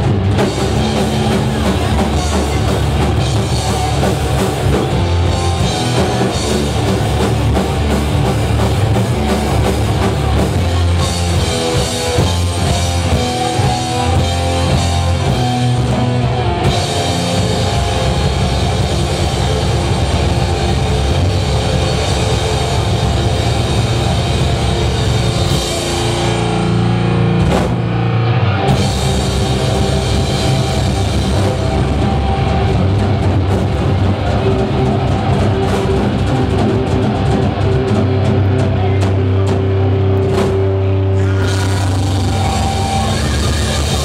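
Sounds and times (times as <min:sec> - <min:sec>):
bass: 0:00.0 - 0:44.0
distorted electric guitars: 0:00.0 - 0:44.0
drum kit with cymbals: 0:00.0 - 0:44.0
heavy metal band playing: 0:00.0 - 0:44.0.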